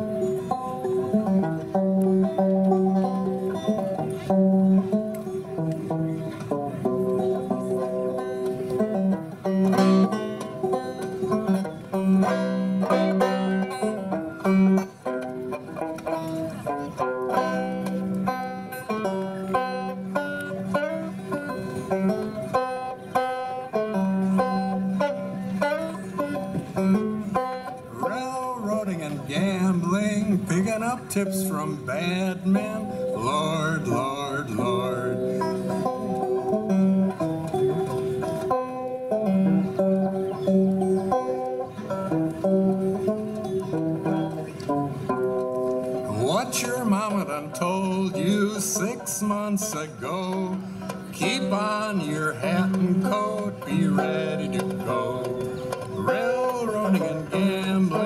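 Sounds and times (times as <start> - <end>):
solo banjo playing: 0.0 - 58.0.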